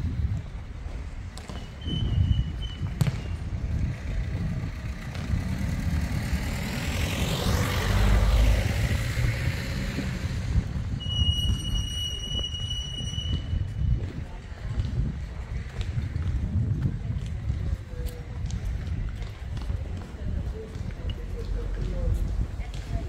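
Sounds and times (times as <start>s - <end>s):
steady low rumble: 0.0s - 11.3s, 13.0s - 23.0s
vehicle passing by: 3.4s - 11.0s.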